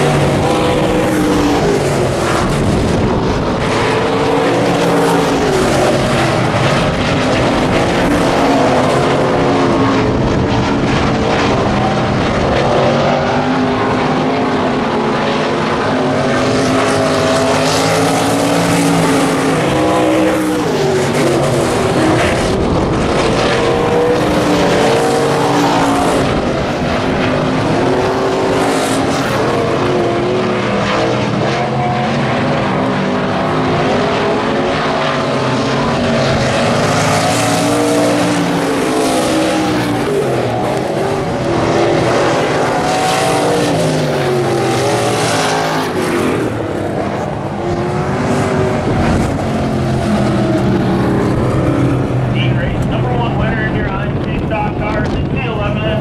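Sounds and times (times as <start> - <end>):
stock car engines racing: 0.0 - 56.0.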